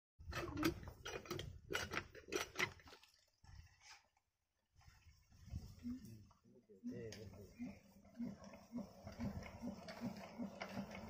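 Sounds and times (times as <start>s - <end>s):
diesel engine cranked by hand: 0.2s - 2.8s, 7.6s - 11.0s.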